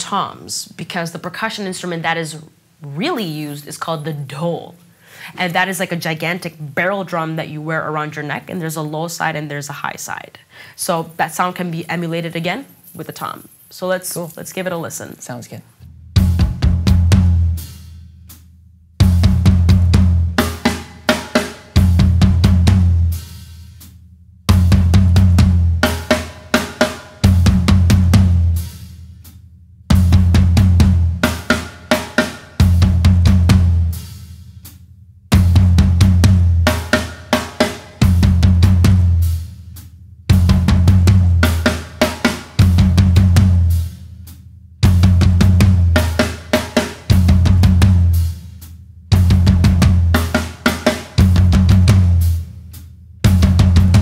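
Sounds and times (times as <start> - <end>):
bass drum: 15.8 - 54.0
hi-hat opening and closing: 17.7 - 18.6.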